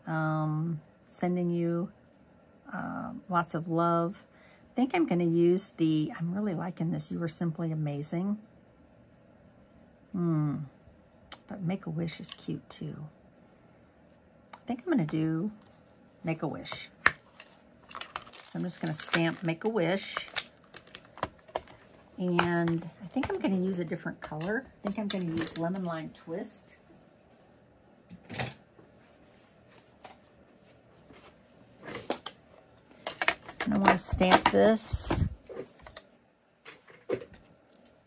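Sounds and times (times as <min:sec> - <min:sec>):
paper rustle: 0:17.2 - 0:22.1
faint plastic crinkle: 0:17.2 - 0:23.5.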